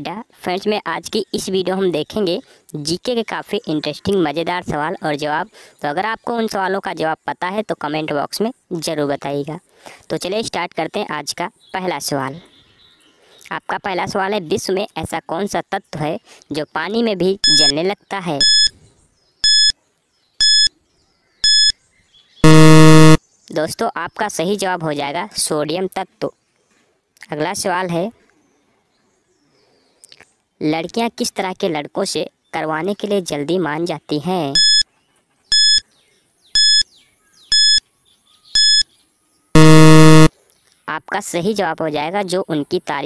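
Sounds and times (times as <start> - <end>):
low buzzer: 17.4 - 17.7, 18.4 - 18.7, 19.4 - 19.7, 20.4 - 20.7, 21.4 - 21.7, 22.4 - 23.2, 34.6 - 34.8, 35.5 - 35.8, 36.6 - 36.8, 37.5 - 37.8, 38.6 - 38.8, 39.6 - 40.3
high electronic timer beeps: 17.4 - 17.8, 18.4 - 18.7, 19.4 - 19.7, 20.4 - 20.7, 21.4 - 21.7, 22.4 - 23.2, 34.6 - 34.8, 35.5 - 35.8, 36.6 - 36.8, 37.5 - 37.8, 38.6 - 38.8, 39.6 - 40.3.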